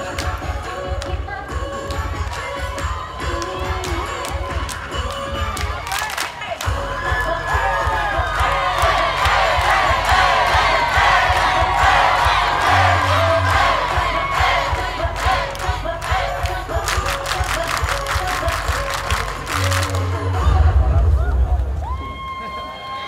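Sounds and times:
dance music with heavy bass: 0:00.0 - 0:21.6
crowd screaming and cheering: 0:02.2 - 0:23.0.

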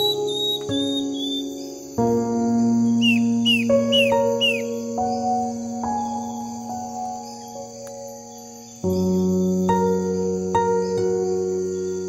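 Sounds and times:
bird chirping: 0:00.0 - 0:12.0
calm instrumental music: 0:00.0 - 0:12.0.

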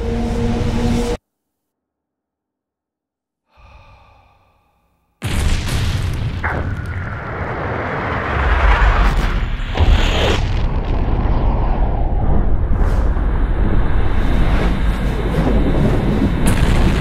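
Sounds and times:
explosion blast with rushing rumble: 0:05.2 - 0:17.0.

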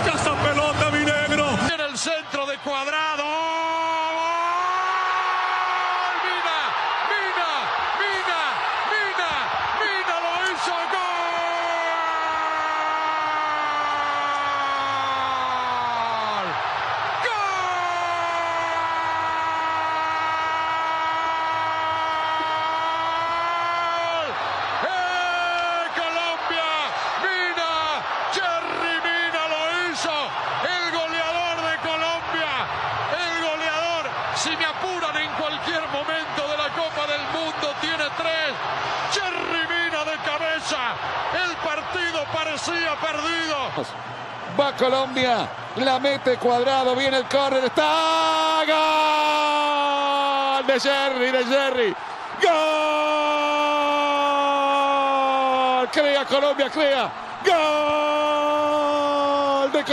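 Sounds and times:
man shouting goal cry: 0:02.8 - 0:43.7, 0:47.5 - 0:59.9.

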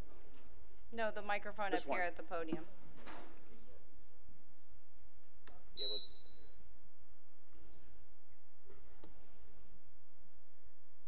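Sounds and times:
high-pitched electronic beep: 0:05.8 - 0:06.4.

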